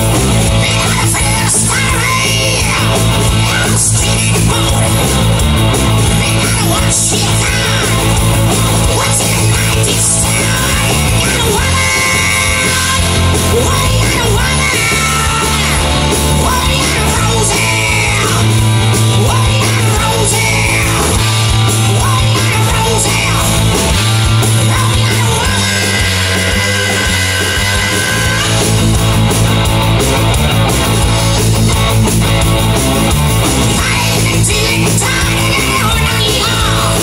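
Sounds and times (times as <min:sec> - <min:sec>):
electric guitar bending notes: 0:00.0 - 0:37.0
live hard rock band: 0:00.0 - 0:37.0.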